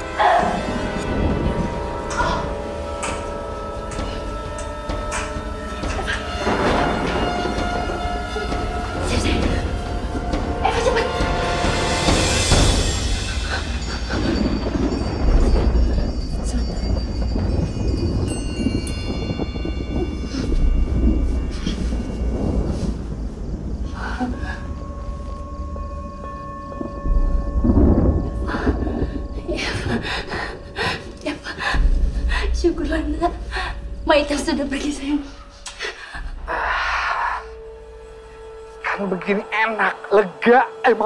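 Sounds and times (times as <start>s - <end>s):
low rumble: 0.0s - 39.6s
eerie high tones: 0.0s - 41.0s
tense horror film score: 0.0s - 41.0s.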